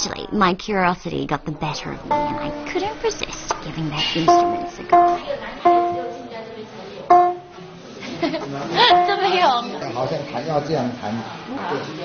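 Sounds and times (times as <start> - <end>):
lute notes plucked: 2.1 - 3.0, 4.2 - 6.3, 7.1 - 7.6, 8.8 - 9.4.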